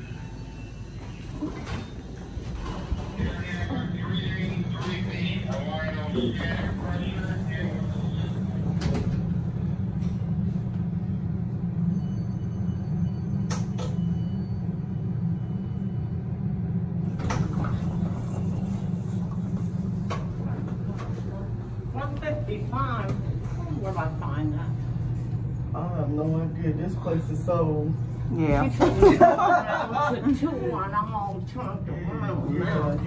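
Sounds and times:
elevator low hum: 0.0 - 33.0.

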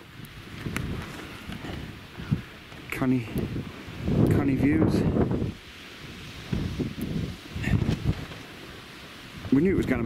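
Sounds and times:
gusty wind buffeting microphone: 0.0 - 10.0.

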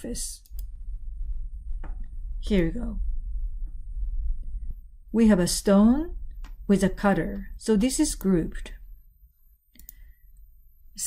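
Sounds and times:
computer mouse click: 9.7 - 10.1.

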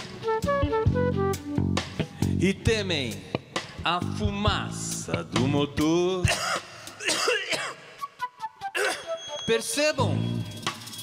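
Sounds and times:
live band music: 0.0 - 7.0, 7.8 - 11.0.

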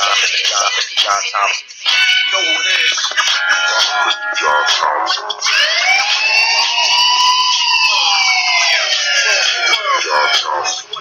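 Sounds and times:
siren-like rising and falling tone: 5.5 - 9.6.

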